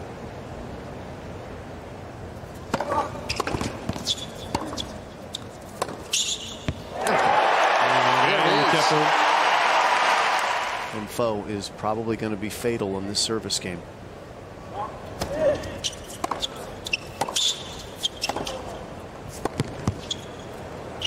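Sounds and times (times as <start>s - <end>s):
tennis ball bouncing on court: 2.7s - 6.9s, 15.2s - 18.7s, 19.3s - 20.4s
crowd cheering and applause: 6.9s - 11.1s.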